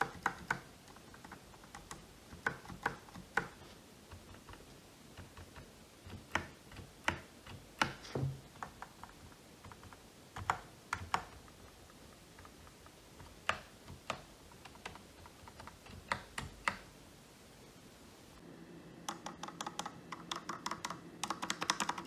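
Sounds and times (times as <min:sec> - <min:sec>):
keyboard keys clacking: 0:19.0 - 0:22.0.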